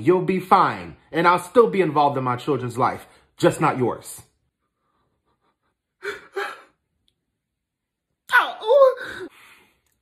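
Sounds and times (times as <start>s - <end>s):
man's sobbing gasps: 6.0s - 6.8s.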